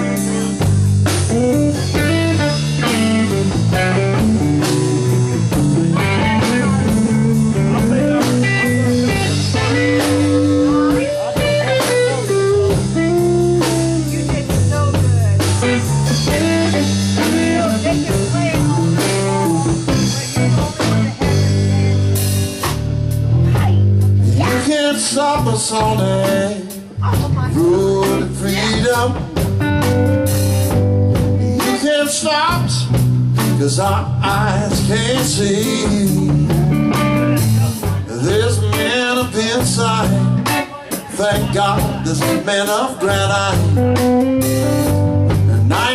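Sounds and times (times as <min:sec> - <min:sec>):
blues-rock band playing: 0:00.0 - 0:45.9
electric guitar: 0:00.0 - 0:45.9.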